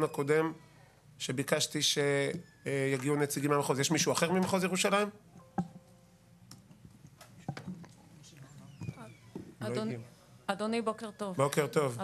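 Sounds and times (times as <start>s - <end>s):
sharp knocks: 5.6s - 5.9s.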